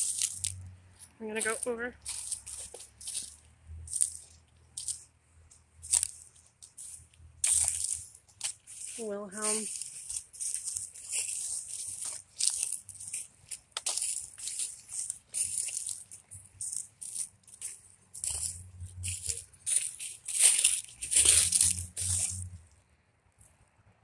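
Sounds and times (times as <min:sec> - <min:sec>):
footsteps crunching through dry leaves: 0:00.0 - 0:05.0, 0:05.8 - 0:22.6.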